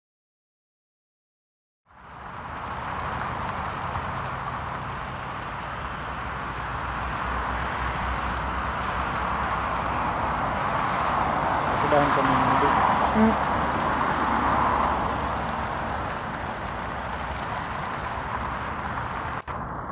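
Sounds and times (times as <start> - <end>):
distant propeller plane engine: 1.9 - 19.9.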